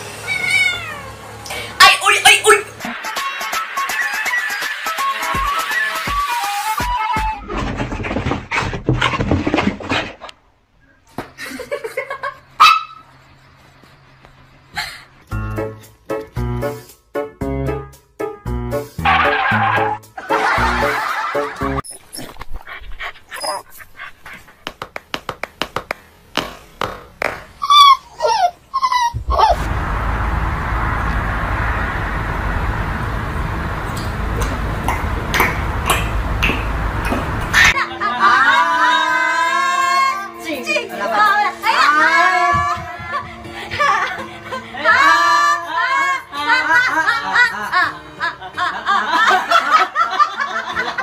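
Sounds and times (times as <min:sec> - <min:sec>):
small dog yipping: 0:12.6 - 0:13.1, 0:23.3 - 0:23.8, 0:27.6 - 0:29.6
dog whining and yelping: 0:21.8 - 0:24.7, 0:27.6 - 0:29.6.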